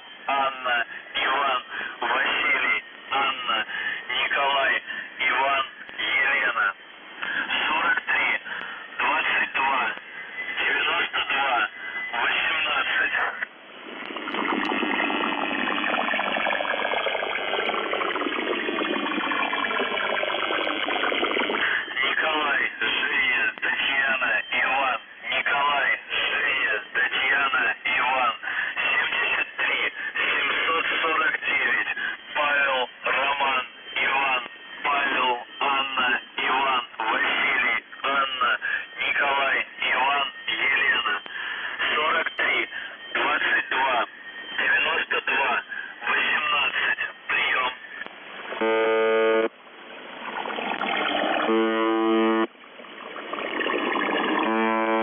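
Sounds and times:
noisy shortwave signal: 0.0 - 55.0
radio buzz tone: 0.0 - 55.0
voice reading over radio: 0.2 - 13.5, 16.7 - 49.5.

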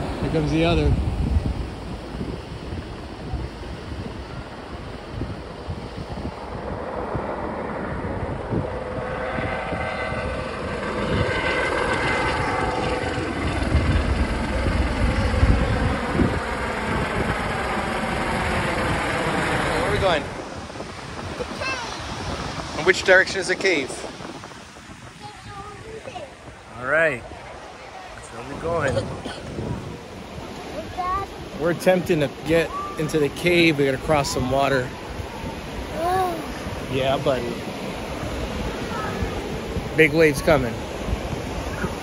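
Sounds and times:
helicopter flying low: 0.0 - 42.0
wind buffeting microphone: 0.0 - 42.0.

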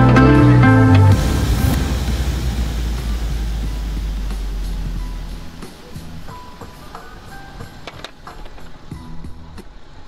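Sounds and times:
street noise low rumble: 0.0 - 10.0
light even hiss: 1.6 - 10.0.

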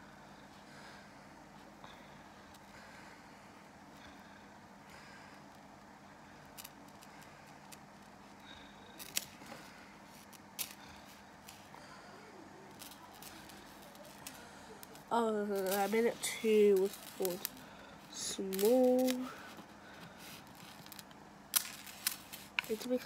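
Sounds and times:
steady low hum: 0.0 - 23.0
clicks and taps of small pieces: 20.5 - 22.9.

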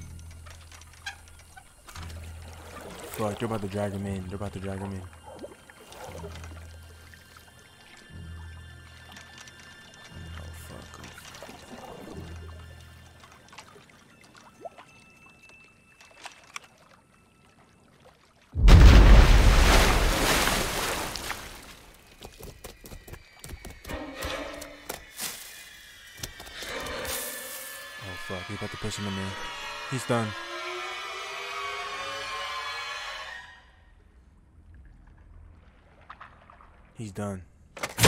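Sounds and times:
faint low drone: 0.0 - 18.0
loud booming crash: 18.6 - 19.6.

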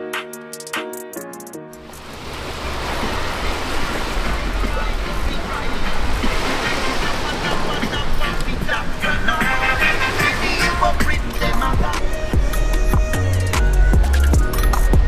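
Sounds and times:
surf and lapping waves: 1.8 - 13.3
voices of beachgoers: 3.8 - 12.2.

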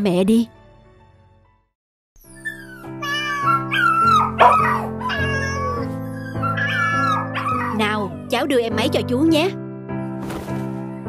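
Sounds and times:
background music: 0.0 - 11.0
dogs and cats crying: 2.2 - 8.5.

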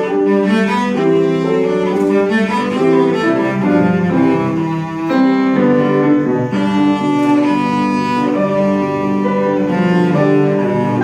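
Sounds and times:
bowed cello melody: 0.0 - 11.0
piano accompaniment: 0.0 - 11.0.

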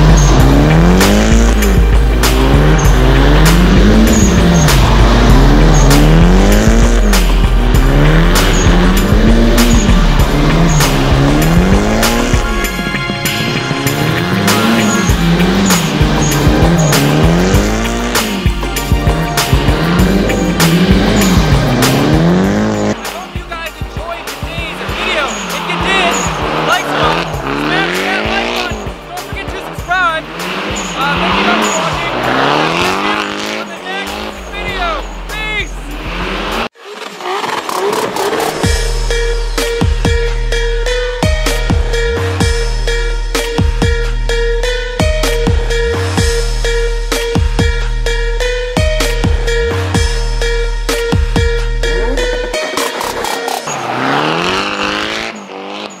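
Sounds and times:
car engine revving: 0.0 - 56.0
tyres squealing and skidding: 0.0 - 56.0.

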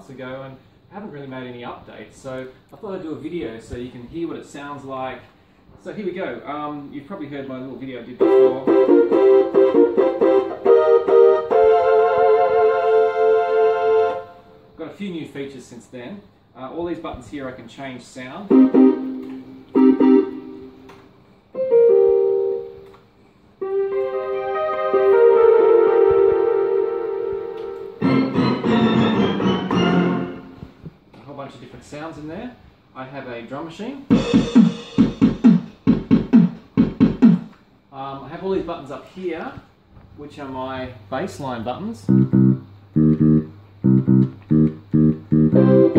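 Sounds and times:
keytar synthesizer chords: 8.2 - 14.4, 18.5 - 20.9, 23.6 - 30.6, 34.1 - 37.5, 42.1 - 45.9.

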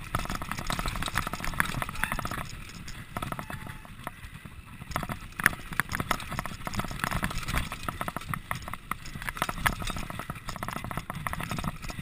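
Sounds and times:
bike knocking and rattling: 0.0 - 12.0
low tyre rumble: 0.0 - 12.0.

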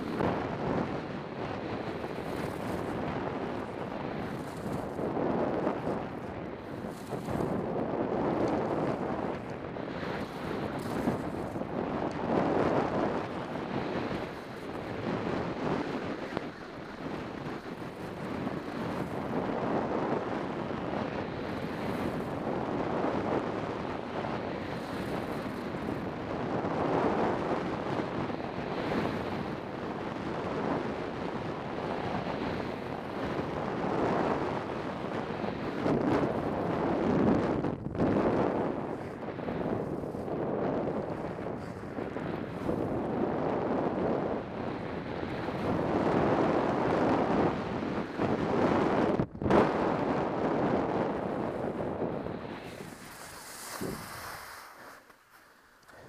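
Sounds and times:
skis carving over snow: 0.0 - 56.0
wind rushing over microphone: 0.0 - 56.0.

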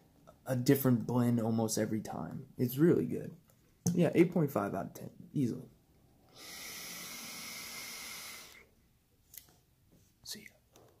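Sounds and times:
vape atomizer hiss: 6.3 - 8.6
person exhaling breath: 6.3 - 8.7.

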